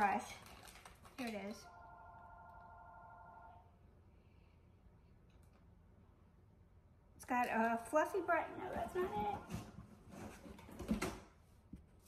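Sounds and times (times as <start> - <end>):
faint steady multi-pitch tone: 1.6 - 3.8.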